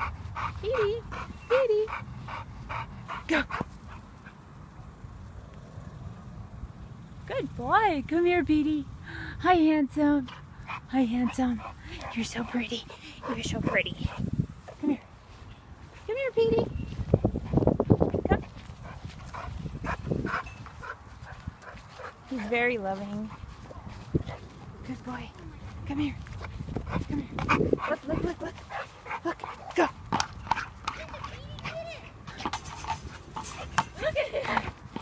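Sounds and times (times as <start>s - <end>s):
wind on microphone: 12.4s - 15.0s, 16.4s - 22.0s, 23.3s - 28.8s.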